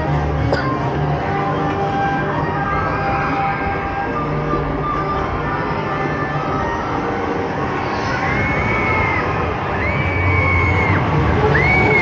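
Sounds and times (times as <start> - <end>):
busy theme park din: 0.0 - 12.0.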